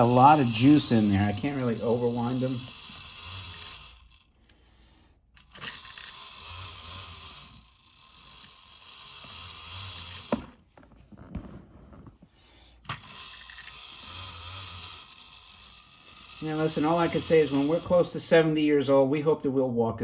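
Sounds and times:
wind-up toy whirring gear buzz: 0.0s - 10.7s, 12.8s - 18.5s.

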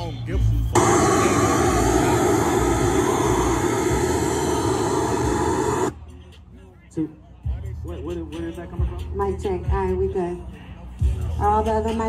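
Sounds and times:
loud steady rushing noise: 0.8s - 6.0s.

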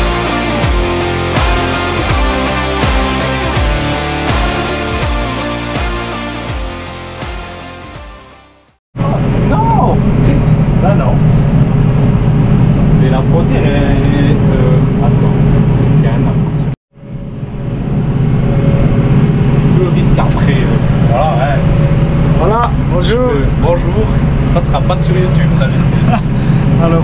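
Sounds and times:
tractor diesel engine droning: 17.0s - 27.0s.

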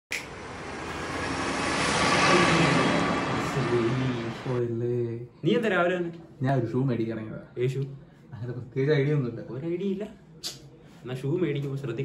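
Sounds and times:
vehicle engine and traffic: 0.1s - 4.6s.

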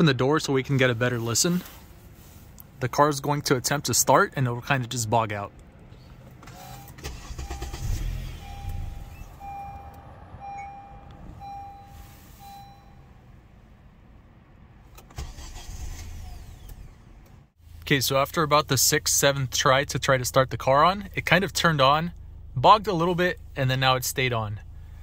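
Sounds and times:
car engine cranking and sputtering: 1.7s - 12.0s, 14.0s - 25.0s
dashboard warning chime beeping: 6.5s - 13.4s.

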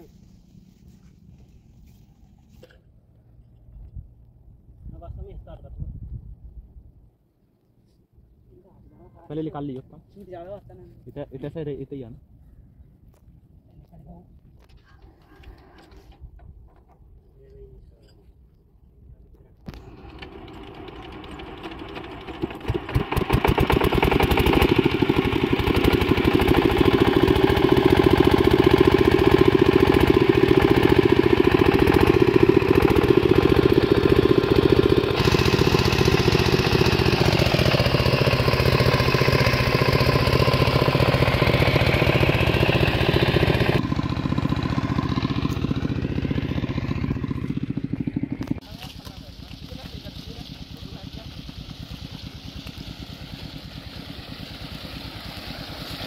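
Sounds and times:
diesel engine starting and running: 19.7s - 56.0s.

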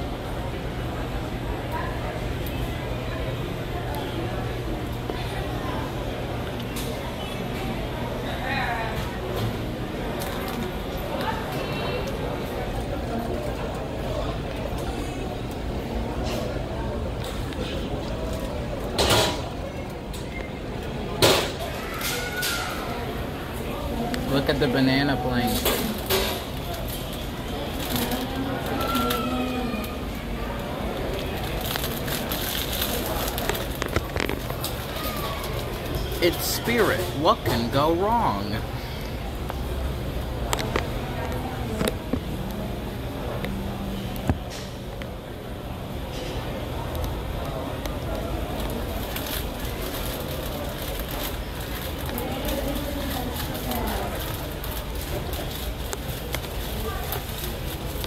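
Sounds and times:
faint indistinct voices: 0.0s - 58.0s
steady background hum: 0.0s - 58.0s.

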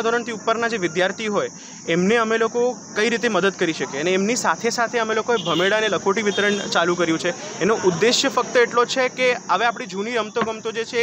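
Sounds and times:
high-pitched hiss: 0.0s - 11.0s
man speaking into a microphone: 0.0s - 11.0s.

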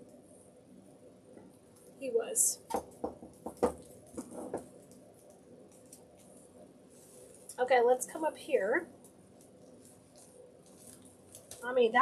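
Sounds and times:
soft rustles of artificial greenery: 0.0s - 12.0s.

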